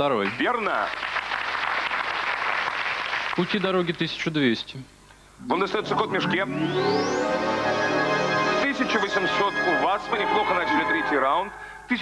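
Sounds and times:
audience applauding: 0.2s - 3.6s.

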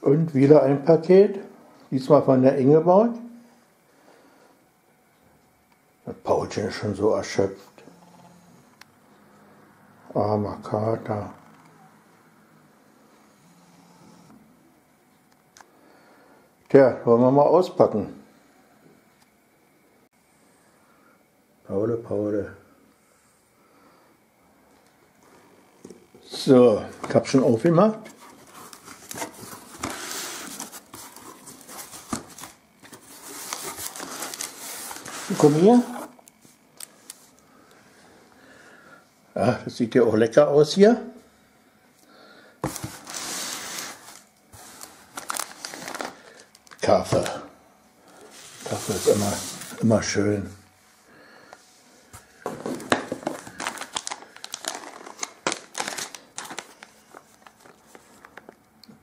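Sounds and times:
cardboard rubbing and rustling: 28.0s - 36.2s, 42.6s - 46.1s
plastic pouch crinkling: 43.8s - 47.0s, 52.8s - 58.6s.

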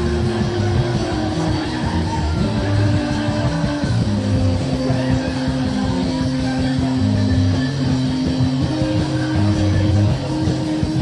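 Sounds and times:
live rock band playing: 0.0s - 11.0s
shifting bass line: 0.0s - 11.0s.

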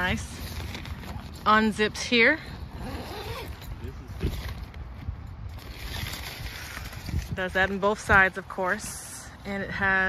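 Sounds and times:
tent zipper being pulled open: 2.5s - 7.8s.

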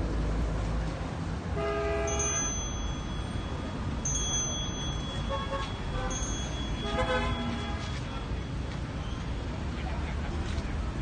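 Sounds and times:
open-air crowd background: 0.0s - 11.0s
horn-like wind instrument notes: 5.2s - 8.1s.

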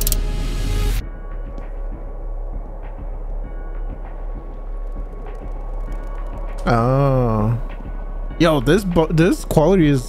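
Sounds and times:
deep bass drone: 0.0s - 10.0s
faint ticks: 4.5s - 6.7s.

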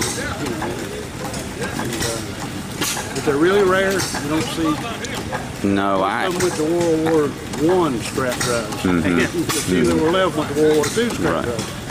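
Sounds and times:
engine clattering: 0.0s - 11.9s
man talking: 3.1s - 11.7s.

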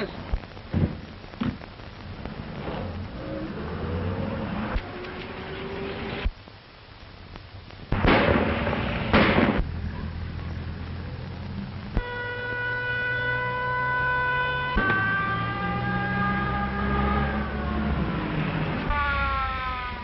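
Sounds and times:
loud bursts of noise: 0.4s - 20.0s
car engine rumbling: 8.0s - 12.1s
police siren: 12.0s - 20.0s.

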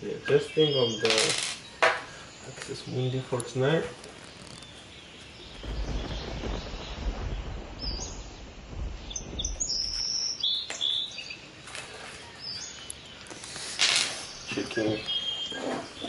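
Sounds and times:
songbirds chirping: 0.0s - 16.0s
low rumble: 5.4s - 10.6s.

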